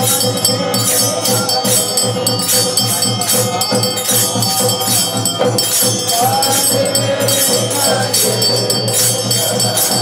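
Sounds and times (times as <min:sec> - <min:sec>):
brass hand bell ringing: 0:00.0 - 0:10.0
devotional music: 0:00.0 - 0:10.0
faint singing: 0:00.0 - 0:10.0
fast jingling percussion: 0:00.0 - 0:10.0.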